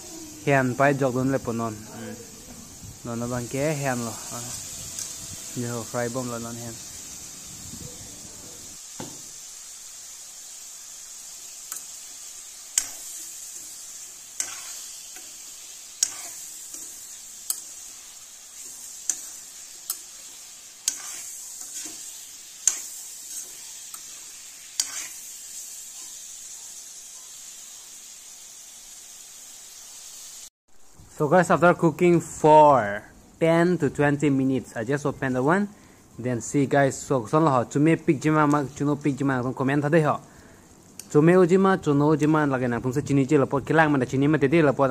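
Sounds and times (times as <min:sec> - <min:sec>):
food sizzling in a wok: 0:00.0 - 0:44.9
metal spoon scraping a wok: 0:04.0 - 0:06.2, 0:12.7 - 0:18.0, 0:18.6 - 0:25.4.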